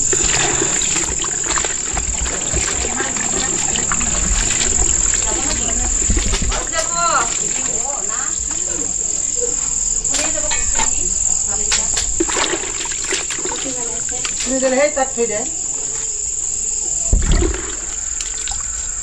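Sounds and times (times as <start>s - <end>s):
crickets chirping: 0.0s - 19.0s
water sloshing in bucket: 0.0s - 19.0s.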